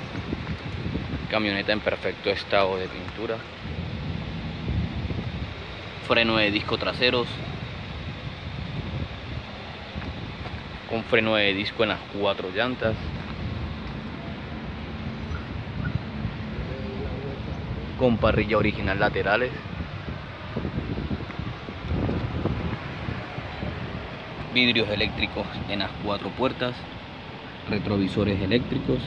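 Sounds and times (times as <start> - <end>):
low background rumble: 0.0 - 29.0
outdoor background noise: 0.0 - 29.0
wind noise on microphone: 0.0 - 29.0.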